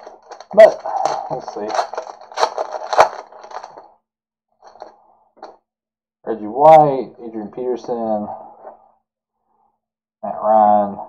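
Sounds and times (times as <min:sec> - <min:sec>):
foil wrapper tearing and crinkling: 0:00.0 - 0:03.8.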